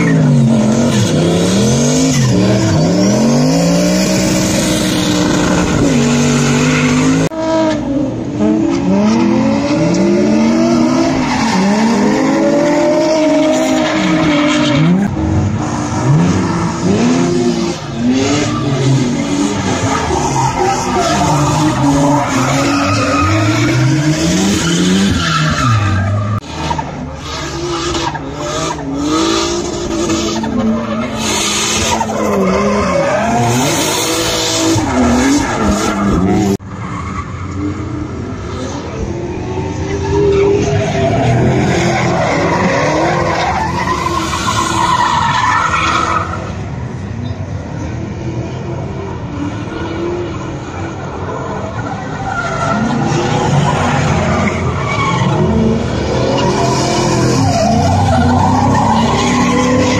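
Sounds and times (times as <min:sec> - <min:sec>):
car engines revving: 0:00.0 - 0:59.9.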